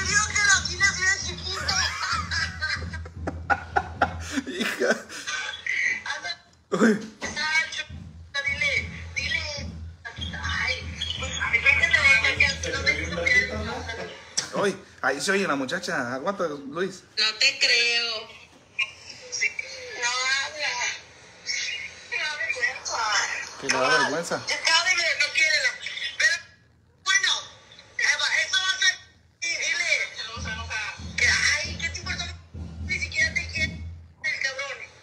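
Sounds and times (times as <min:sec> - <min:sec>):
woman talking on phone recording: 0:00.0 - 0:03.0, 0:05.3 - 0:06.5, 0:07.2 - 0:14.6, 0:17.1 - 0:35.0
low hum: 0:00.0 - 0:05.6, 0:06.7 - 0:15.0.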